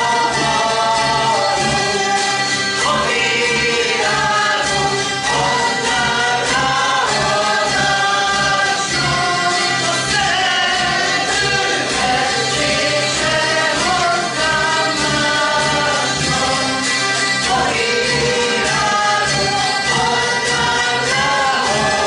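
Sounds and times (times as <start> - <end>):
group singing: 0.0 - 22.0
zither ensemble strumming: 0.0 - 22.0.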